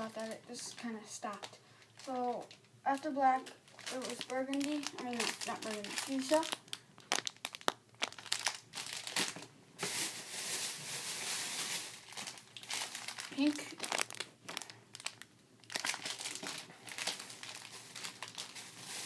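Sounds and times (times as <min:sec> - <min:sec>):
plastic bag crinkling: 0:00.0 - 0:19.0.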